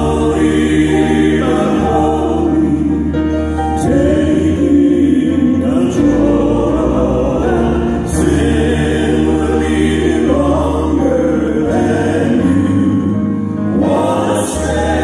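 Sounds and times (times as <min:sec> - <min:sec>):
male quartet singing in harmony: 0:00.0 - 0:15.0
piano accompaniment: 0:00.0 - 0:15.0.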